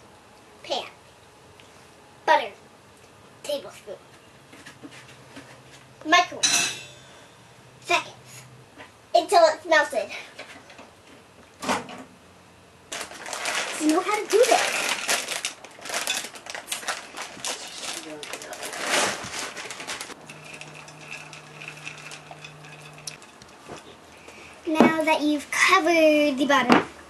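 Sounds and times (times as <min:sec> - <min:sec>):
chocolate chips rattling into glass dish: 0:19.5 - 0:23.4.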